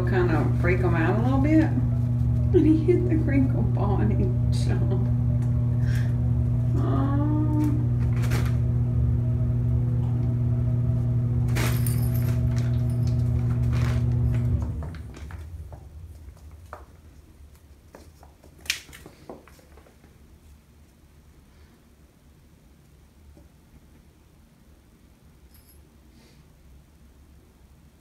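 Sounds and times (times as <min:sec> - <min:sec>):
low electrical motor hum: 0:00.0 - 0:28.0.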